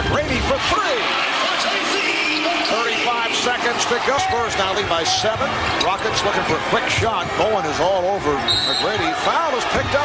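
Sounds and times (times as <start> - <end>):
arena crowd noise: 0.0 - 10.0
commentator talking: 1.7 - 10.0.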